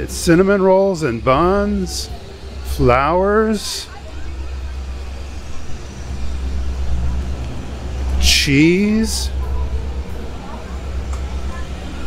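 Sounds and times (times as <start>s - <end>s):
faint voices of shoppers: 0.0s - 12.0s
low rumble: 0.0s - 12.0s.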